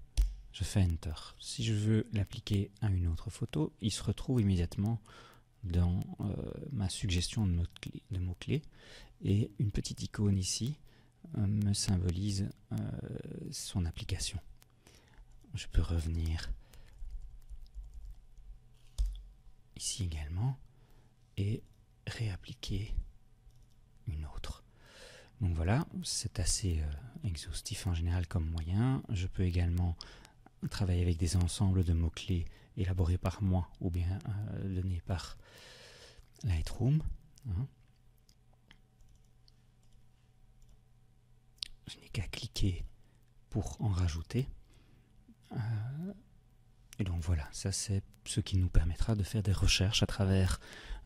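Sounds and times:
faint room hum: 0.0 - 51.0
computer mouse clicks: 16.1 - 19.3, 23.5 - 23.8, 37.9 - 40.0.

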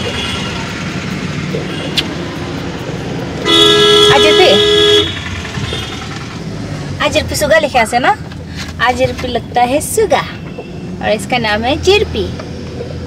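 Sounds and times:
road and engine noise inside car: 0.0 - 13.0
two-tone car horn blast: 3.4 - 6.1.

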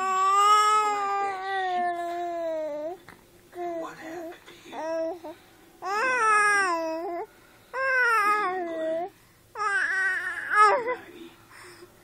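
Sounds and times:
baby's drawn-out vocal sound: 0.0 - 3.0, 3.6 - 11.0.

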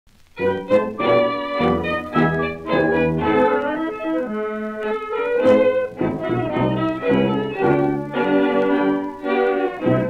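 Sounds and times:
dance orchestra playing tango: 0.3 - 10.0.

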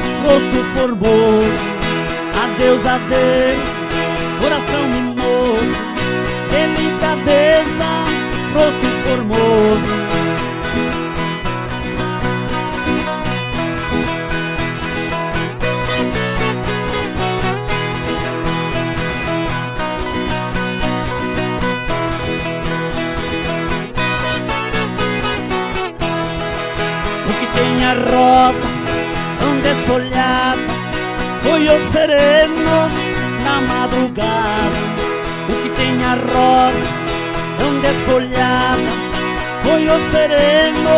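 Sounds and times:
ten-string guitars playing: 0.0 - 40.9.

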